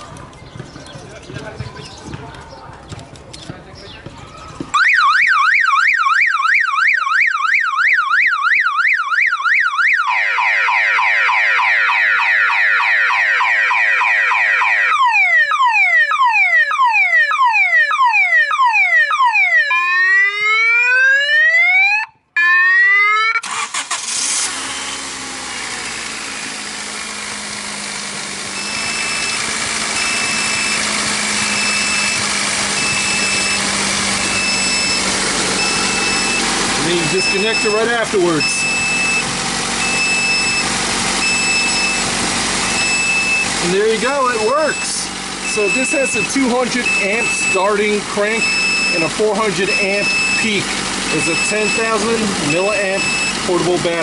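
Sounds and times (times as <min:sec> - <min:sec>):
car alarm siren: 0:04.7 - 0:24.5, 0:28.6 - 0:54.0
car engine idling: 0:23.4 - 0:54.0.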